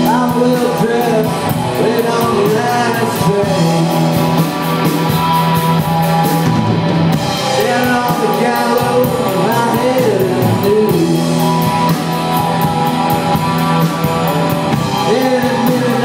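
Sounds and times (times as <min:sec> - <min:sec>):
drum kit cymbal beat: 0:00.0 - 0:16.0
electric guitars: 0:00.0 - 0:16.0.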